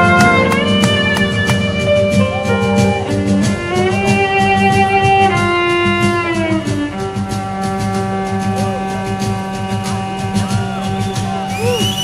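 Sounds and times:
sliding lead melody: 0.0 - 11.5
drums and bass beat: 0.0 - 12.0.

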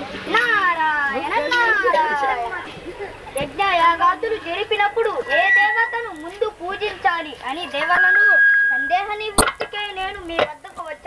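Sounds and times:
children speaking: 0.0 - 11.0.

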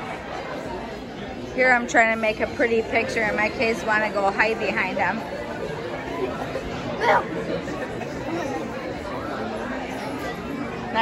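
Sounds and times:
murmur of many voices indoors: 0.0 - 11.0.

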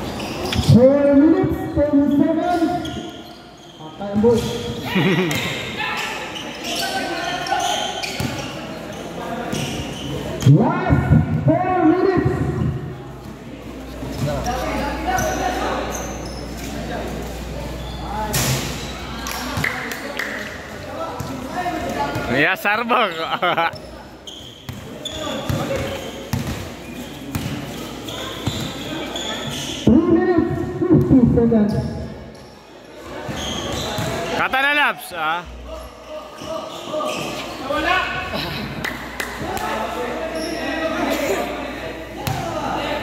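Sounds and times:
shoe squeaks: 0.0 - 1.0, 1.9 - 4.9, 5.9 - 10.4, 14.0 - 20.5, 22.3 - 29.9, 31.6 - 34.6, 35.7 - 38.0, 40.3 - 41.0
players' voices: 0.2 - 32.1
basketball bouncing on court: 24.7 - 26.7.

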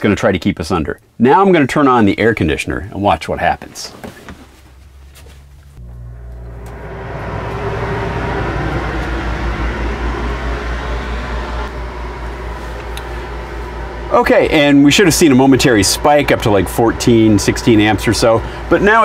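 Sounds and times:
air conditioner hum: 0.0 - 19.0
air conditioner fan rushing air: 3.6 - 19.0.

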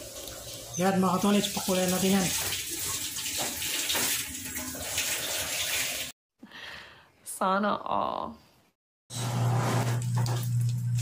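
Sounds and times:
water running into metal pot: 0.0 - 6.1.

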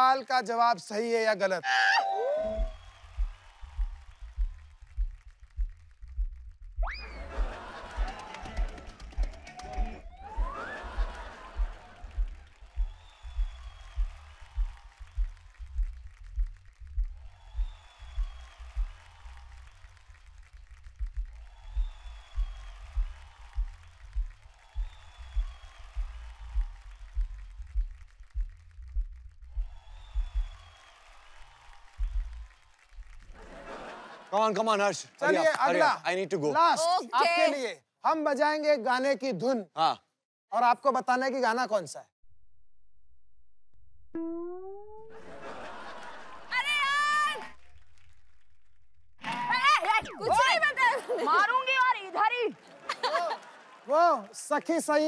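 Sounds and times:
background music with low beat: 2.4 - 33.1.

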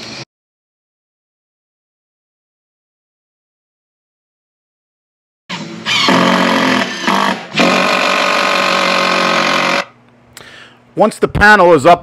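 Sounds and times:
power drill motor running: 5.5 - 10.0.

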